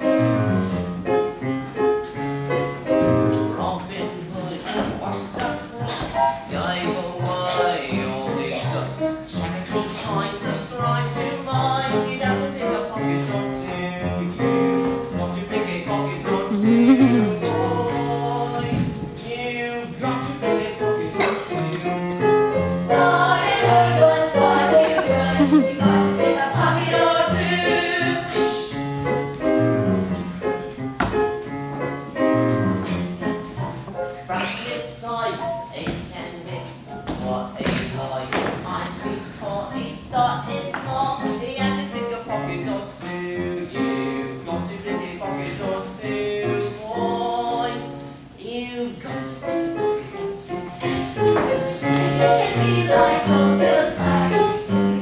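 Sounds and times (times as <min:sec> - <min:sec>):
voices singing: 0:16.3 - 0:22.0, 0:22.9 - 0:28.6, 0:50.5 - 0:54.9
instrumental accompaniment: 0:16.5 - 0:19.2.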